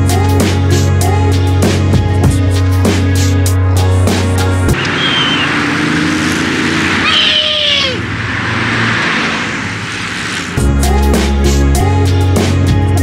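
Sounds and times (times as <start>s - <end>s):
background music: 0.0s - 5.3s, 10.6s - 13.0s
wind and road noise: 4.7s - 11.0s.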